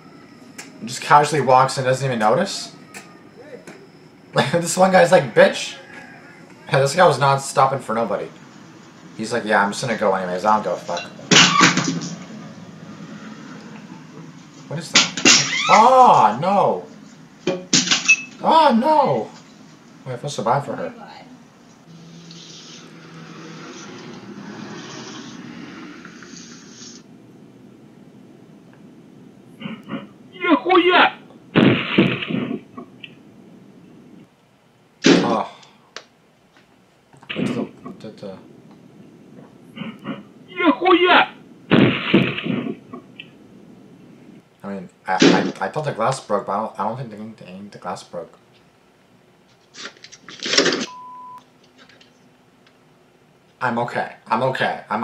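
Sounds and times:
high beep: 0:50.9 - 0:51.4.

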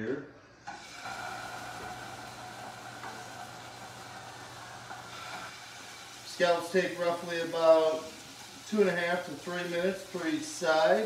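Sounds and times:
scallops sizzling in a pan: 0:00.8 - 0:11.0.

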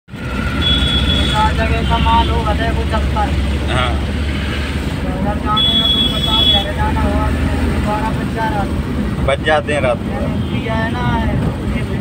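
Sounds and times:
car engine and tyres rumbling: 0:00.1 - 0:12.0.

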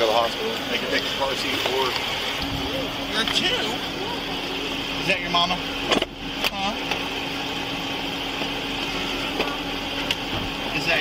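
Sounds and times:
street noise: 0:00.0 - 0:11.0
vehicle engine idling: 0:00.0 - 0:11.0.

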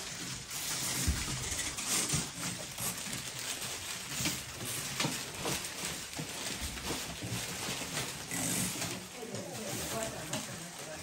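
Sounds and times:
paper packets rustling: 0:00.0 - 0:11.0.

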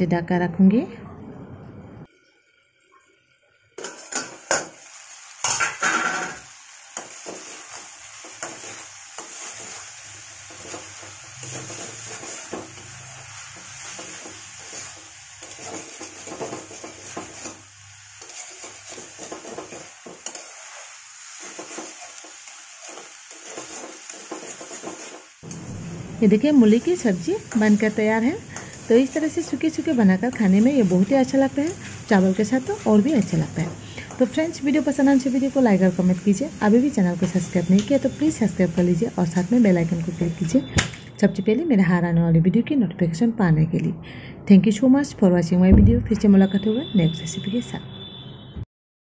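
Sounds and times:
food sizzling: 0:02.0 - 0:41.2
metal lid clanking on pan: 0:05.4 - 0:06.4
spatula scraping a pan: 0:05.4 - 0:25.4, 0:27.3 - 0:34.4.

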